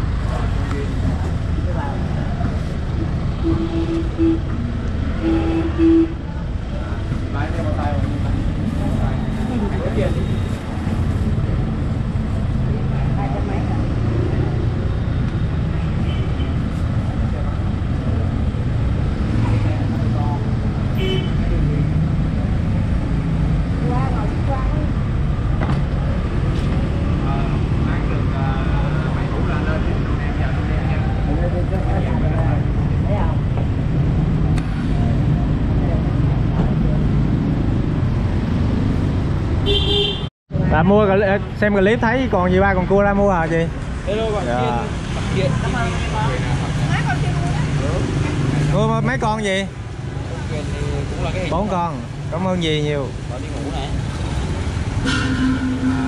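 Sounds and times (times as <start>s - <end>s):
street traffic rumble: 0.0s - 56.0s
vehicle horn beeps: 3.3s - 4.6s, 5.2s - 6.2s, 39.7s - 40.3s, 55.0s - 56.0s.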